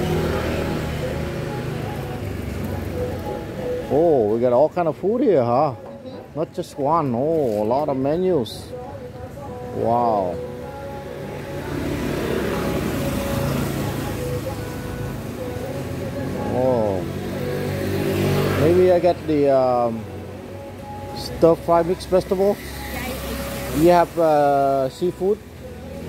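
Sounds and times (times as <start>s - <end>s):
vehicle passing on street: 0.0s - 5.8s, 10.1s - 26.0s.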